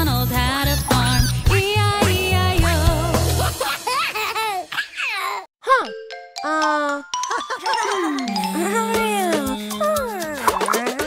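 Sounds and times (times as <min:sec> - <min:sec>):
children's song: 0:00.0 - 0:03.5, 0:06.4 - 0:11.0
baby giggling: 0:03.6 - 0:05.5, 0:07.3 - 0:11.0.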